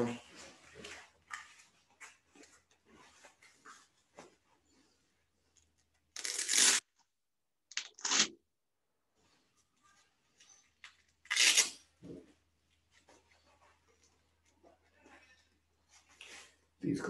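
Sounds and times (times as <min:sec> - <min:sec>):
padded gloves rustling: 0:00.2 - 0:07.1, 0:09.0 - 0:16.8
velcro strap ripping: 0:06.2 - 0:06.9, 0:07.7 - 0:08.4, 0:11.2 - 0:11.8.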